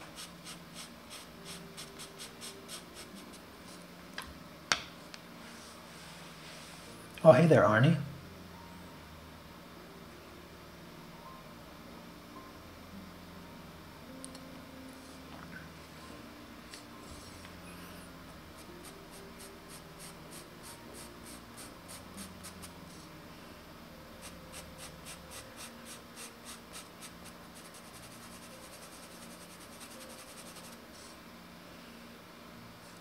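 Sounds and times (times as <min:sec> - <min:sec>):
pencil scratching on paper: 0:24.2 - 0:30.8.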